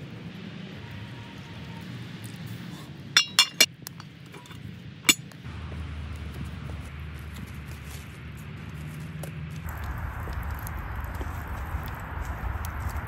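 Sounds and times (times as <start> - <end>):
pot lid clinking against pot: 3.2 - 3.7.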